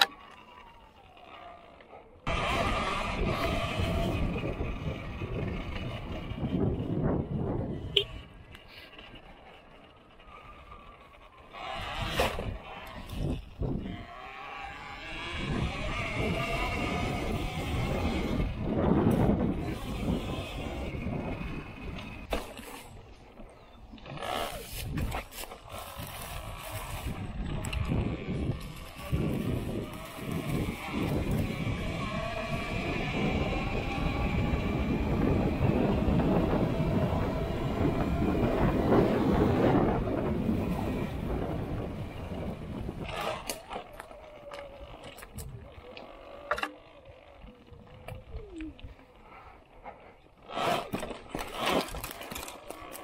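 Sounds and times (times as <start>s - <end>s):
tyres rumbling on dirt: 0.0s - 49.1s, 50.3s - 53.0s
electric motorbike motor whine: 0.0s - 53.0s.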